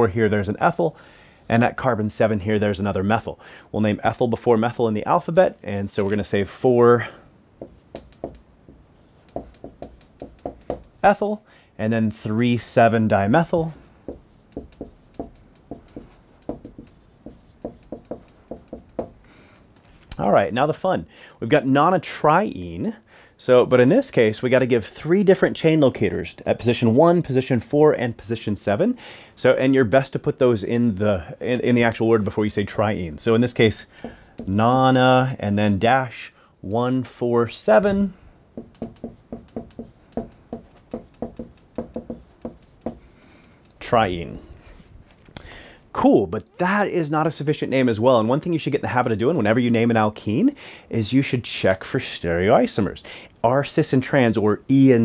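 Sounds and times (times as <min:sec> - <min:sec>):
marker writing on whiteboard: 0:07.6 - 0:11.0, 0:13.4 - 0:20.1, 0:33.5 - 0:35.0, 0:38.6 - 0:43.2.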